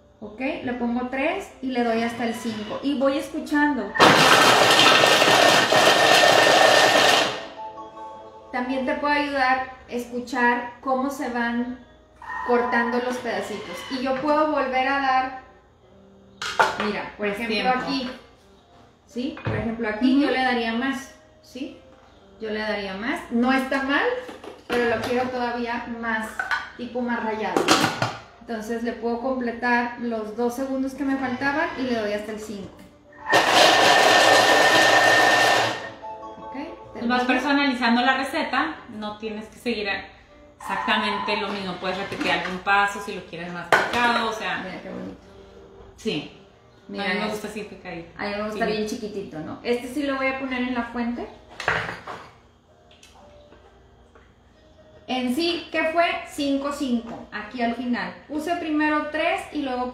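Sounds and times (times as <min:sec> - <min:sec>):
food processor blade whirring: 0:04.0 - 0:07.4, 0:33.3 - 0:35.9.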